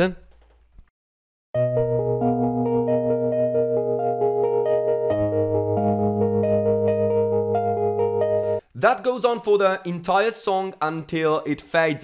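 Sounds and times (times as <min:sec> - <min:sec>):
electric piano playing chords: 0:01.6 - 0:08.6.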